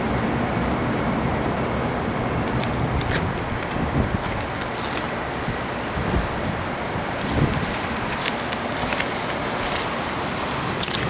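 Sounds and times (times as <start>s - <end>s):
wind noise on microphone: 1.3s - 11.0s
light camera handling clicks: 10.8s - 11.0s.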